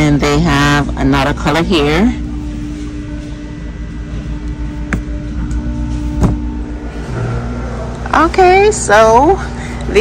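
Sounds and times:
electrical hum: 0:00.0 - 0:10.0
low rumble: 0:00.0 - 0:10.0.

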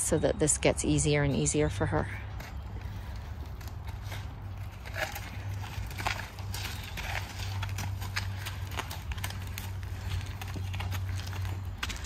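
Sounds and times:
horse hooves on gravel: 0:00.0 - 0:12.0
low steady rumble: 0:00.0 - 0:12.0.

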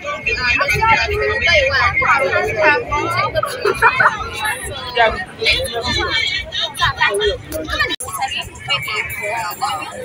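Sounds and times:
crowd chatter: 0:00.0 - 0:10.0
traffic noise: 0:00.0 - 0:10.0
voices talking: 0:00.0 - 0:10.0.

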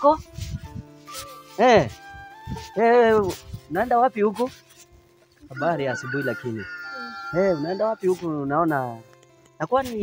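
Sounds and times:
man talking: 0:02.7 - 0:04.6, 0:05.5 - 0:06.7, 0:07.3 - 0:09.0
rooster crowing: 0:05.5 - 0:07.8.

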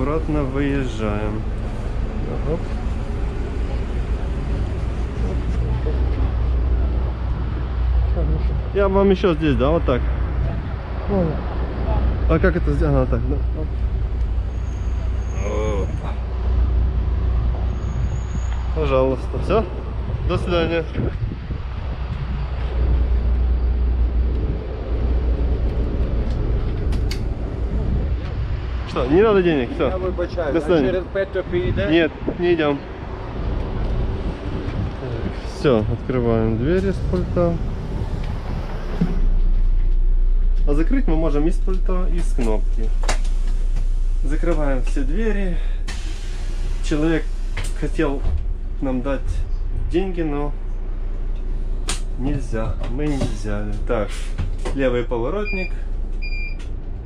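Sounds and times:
bus engine idling: 0:00.0 - 0:57.0
deep hum: 0:00.0 - 0:57.0.

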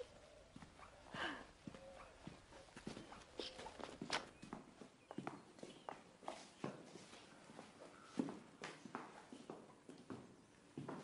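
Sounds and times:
faint footsteps: 0:00.0 - 0:11.0.

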